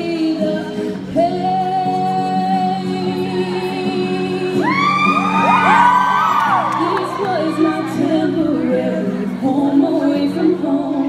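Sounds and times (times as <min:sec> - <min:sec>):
audience whooping and cheering: 0:04.6 - 0:08.1.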